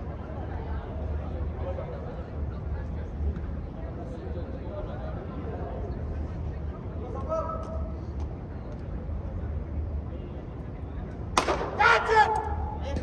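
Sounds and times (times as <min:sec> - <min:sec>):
cricket bat striking ball: 0:11.4 - 0:13.0
players shouting: 0:11.4 - 0:13.0.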